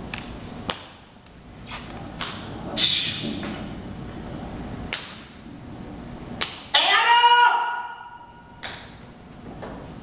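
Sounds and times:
voice calling out with echo: 6.7 - 8.4.

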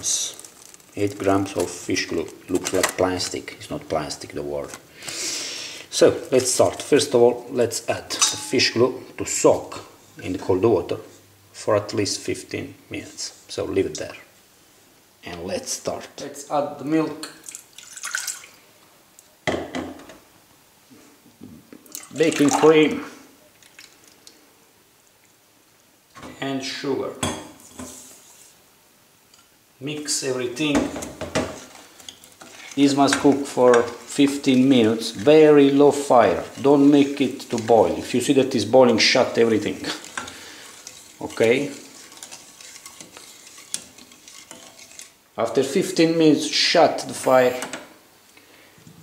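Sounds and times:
wooden spoon stirring in metal pot: 0.0 - 4.9, 5.8 - 11.2, 30.3 - 47.9.

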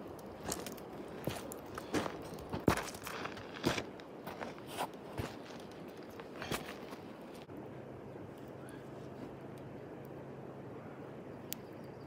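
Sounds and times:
footsteps on gravel: 0.3 - 7.5.

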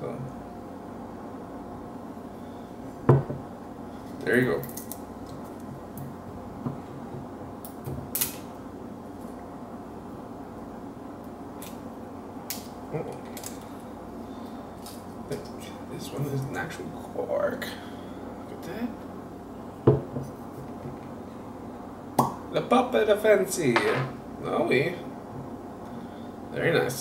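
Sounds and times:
glass bottle set down on table: 3.1 - 3.4.

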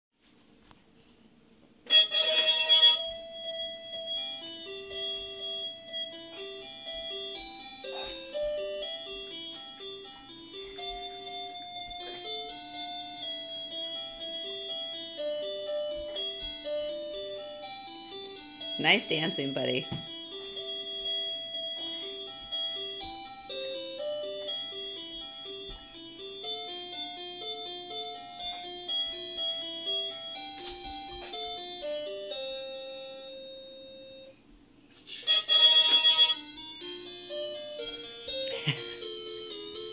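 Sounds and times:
baby toy electronic melody: 1.9 - 34.3, 35.1 - 39.9.

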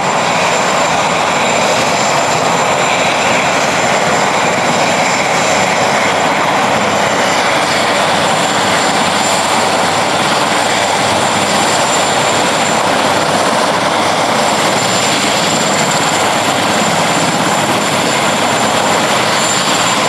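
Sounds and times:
helicopter rotor and engine: 0.0 - 20.0.

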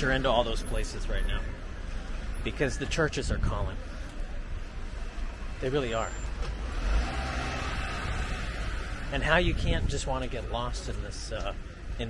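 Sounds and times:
rushing outdoor noise: 0.0 - 12.0.

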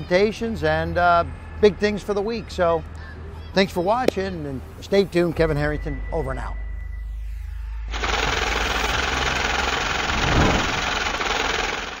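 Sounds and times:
harsh rumbling noise effect: 8.5 - 12.0.

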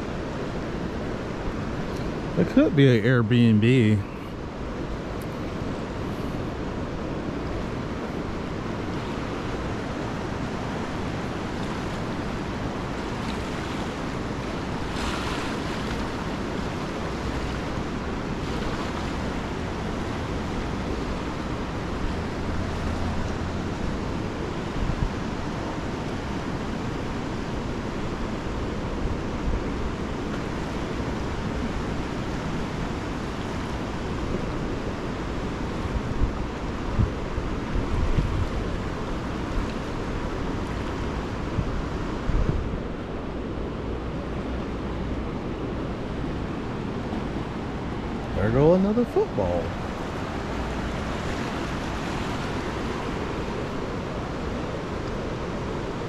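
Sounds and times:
river rushing over rapids: 0.0 - 56.0
wind buffeting microphone: 6.6 - 25.5, 35.8 - 48.4.

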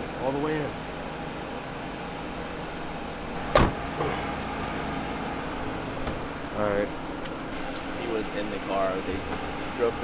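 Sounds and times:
steady low hum: 0.0 - 10.0
car door slamming: 3.4 - 4.0.

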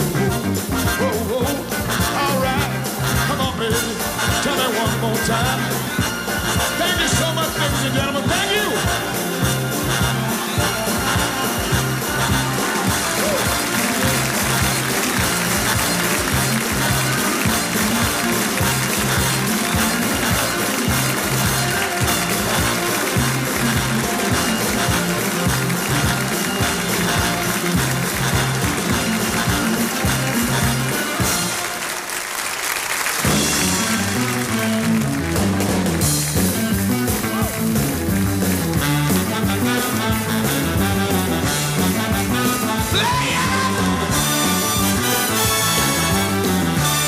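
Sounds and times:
live band playing: 0.0 - 47.0
audience applause: 5.4 - 47.0.

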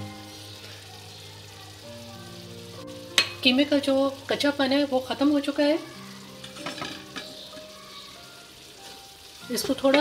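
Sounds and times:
minced meat sizzling in oil: 0.0 - 10.0.

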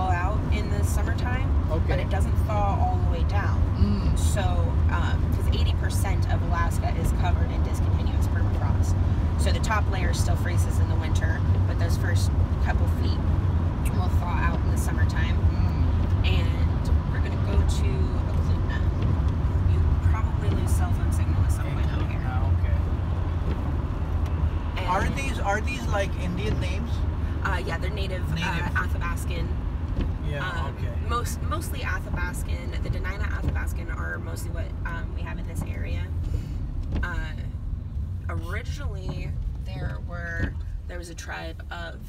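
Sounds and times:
van engine and tyres rumbling: 0.0 - 42.0
person talking: 24.8 - 29.5, 30.2 - 36.0.

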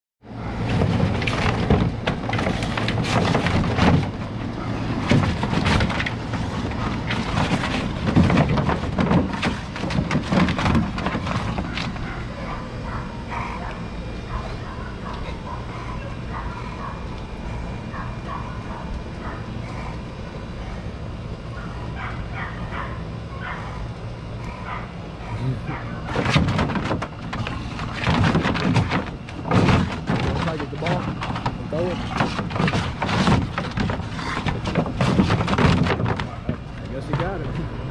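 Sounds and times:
steady low hum: 0.2 - 37.9
balls knocking in plastic pool: 0.6 - 4.3, 4.9 - 12.2, 26.0 - 37.6
dog vocalizing: 11.4 - 20.8, 21.5 - 26.4.

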